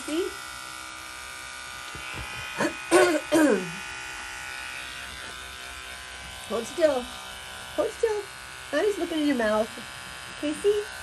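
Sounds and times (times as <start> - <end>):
electric clippers buzzing: 0.0 - 11.0.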